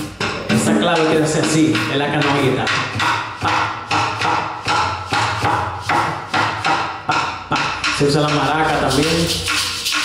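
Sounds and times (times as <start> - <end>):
sharp wooden knocks: 0.0 - 10.0.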